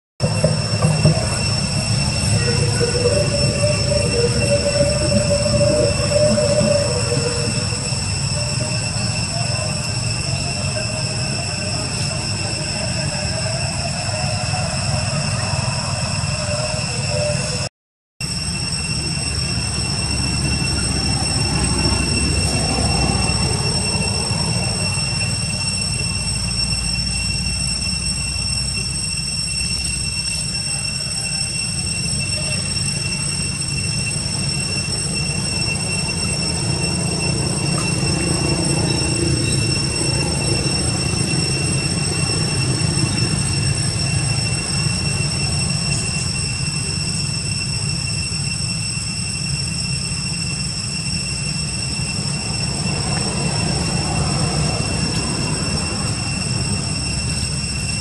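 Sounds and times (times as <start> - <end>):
low rumble: 0.2 - 17.3
cicadas droning: 0.2 - 58.0.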